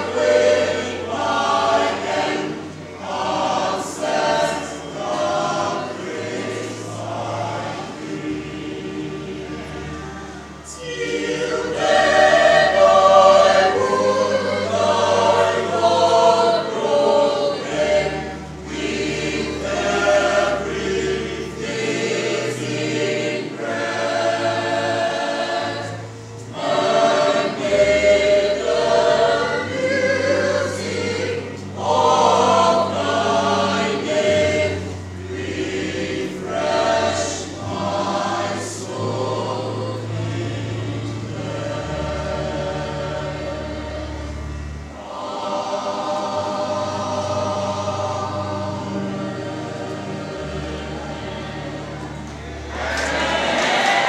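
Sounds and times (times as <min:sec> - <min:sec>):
sustained low bass notes: 0:00.0 - 0:53.9
choir singing a hymn: 0:00.0 - 0:54.0.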